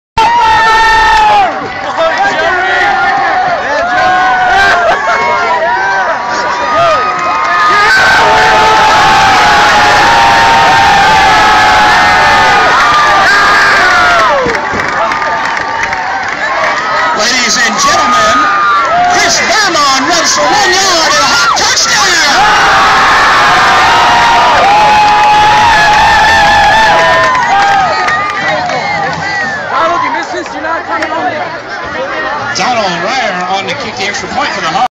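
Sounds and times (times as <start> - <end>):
crowd cheering and screaming: 0.2 - 32.6.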